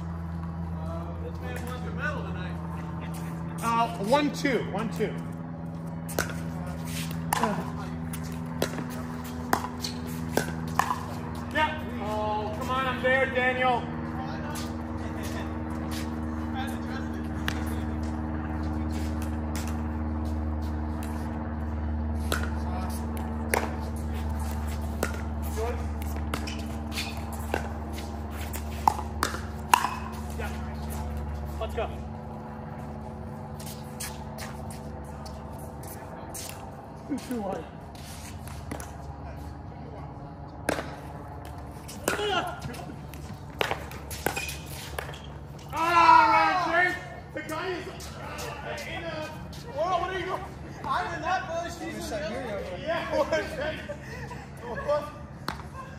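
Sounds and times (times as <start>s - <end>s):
steady low hum: 0.0s - 55.9s
paddles hitting plastic ball: 26.0s - 30.3s, 40.6s - 45.8s.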